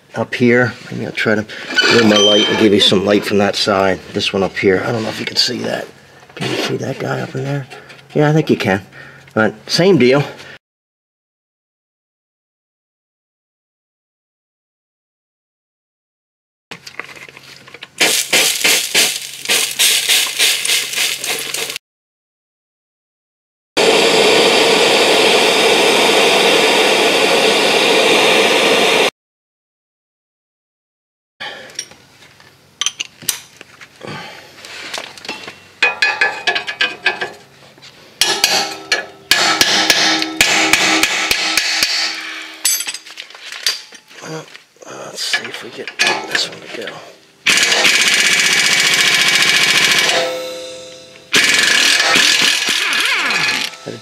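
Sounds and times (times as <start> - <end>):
gas torch hissing: 23.8 - 29.1
impact wrench hammering: 38.2 - 43.0, 47.5 - 52.8.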